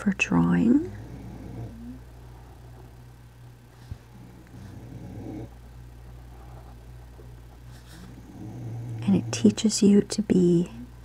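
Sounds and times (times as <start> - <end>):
low steady hum: 0.0 - 11.0
pet snoring: 0.3 - 3.0, 3.8 - 5.6, 7.7 - 9.8.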